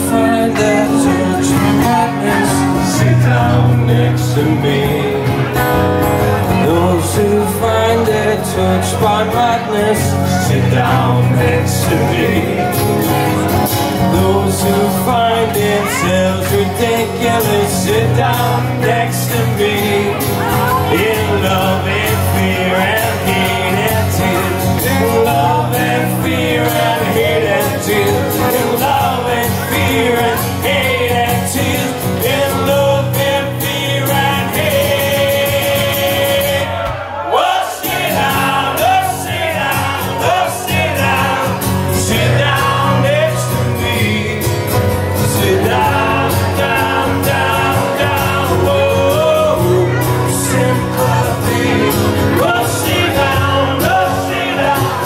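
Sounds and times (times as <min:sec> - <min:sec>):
acoustic guitars strummed: 0:00.0 - 0:55.0
men singing into microphones: 0:00.0 - 0:55.0.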